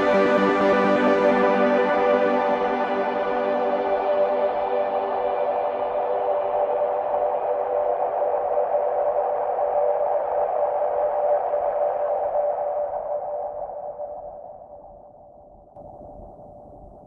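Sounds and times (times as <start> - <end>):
synthesizer drone: 0.0 - 13.0.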